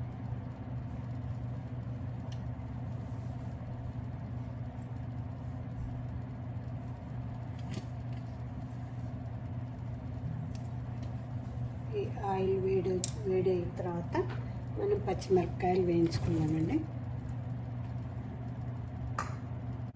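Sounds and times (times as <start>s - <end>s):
low motor hum: 0.0s - 19.9s.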